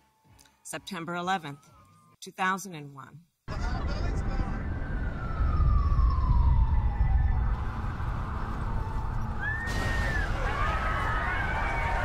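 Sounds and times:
deep steady rumble: 3.5 - 9.6
emergency vehicle siren: 3.5 - 12.0.

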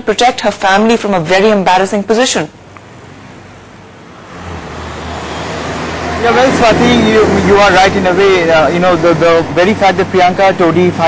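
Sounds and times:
road traffic noise: 2.0 - 11.0
low hum of engines: 2.5 - 11.0.

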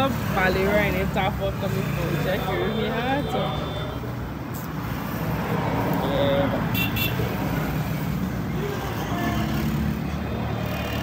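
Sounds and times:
traffic rumble: 0.0 - 11.0
vehicle horn double beep: 6.8 - 7.2.

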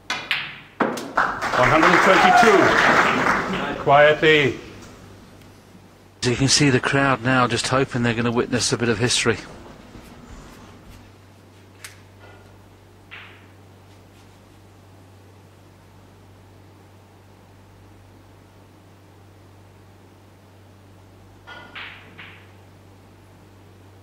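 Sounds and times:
low hum: 3.8 - 13.8.

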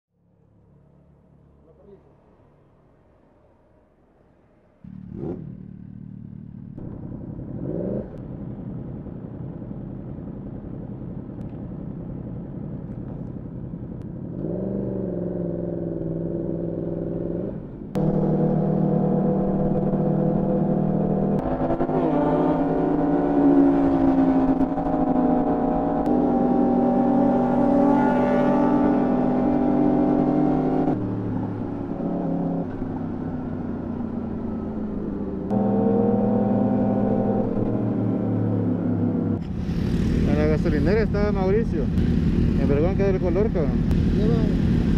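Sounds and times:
motorcycle engine revving: 4.8 - 44.9.

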